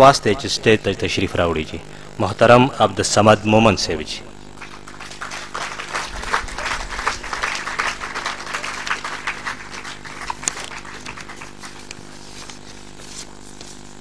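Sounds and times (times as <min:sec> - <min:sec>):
steady low hum: 0:00.0 - 0:14.0
audience applauding: 0:04.5 - 0:12.6.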